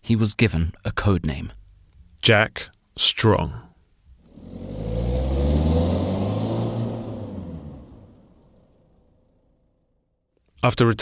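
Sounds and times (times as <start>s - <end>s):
car engine passing by: 4.2s - 9.5s.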